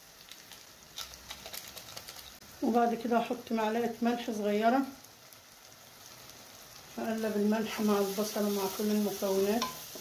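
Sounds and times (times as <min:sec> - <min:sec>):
onion sizzling in oil: 0:00.0 - 0:10.0.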